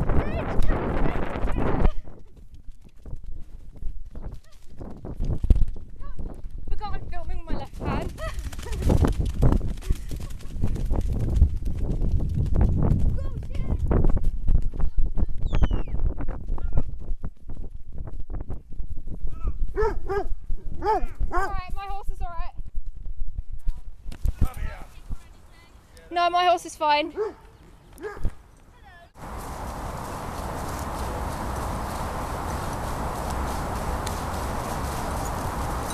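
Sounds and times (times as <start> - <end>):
wind on microphone: 0.0 - 25.3, 29.2 - 35.9
horse hoofbeats: 1.9 - 15.6, 29.2 - 35.9
high calling voices: 25.3 - 35.9.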